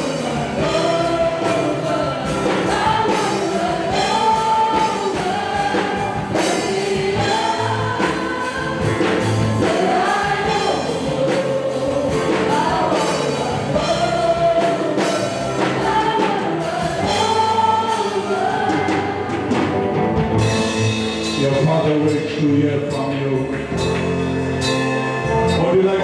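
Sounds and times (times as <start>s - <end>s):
woman singing lead: 0.0s - 20.1s
band accompaniment with steady beat: 0.0s - 26.0s
singers performing gospel song: 0.0s - 26.0s.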